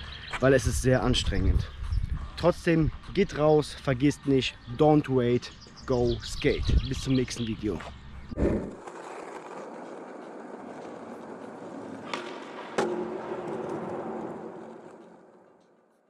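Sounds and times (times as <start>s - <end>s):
skateboard wheels rolling on concrete: 0.0s - 16.0s
skateboard clacks: 8.6s - 15.7s.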